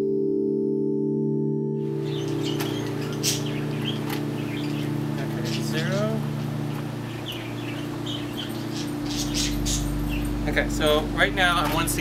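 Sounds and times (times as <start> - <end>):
bird chirps: 1.9 - 10.5
low mechanical hum: 2.0 - 12.0.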